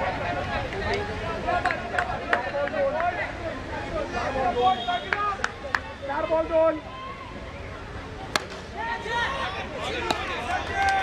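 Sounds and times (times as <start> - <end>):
players calling and shouting: 0.0 - 11.0.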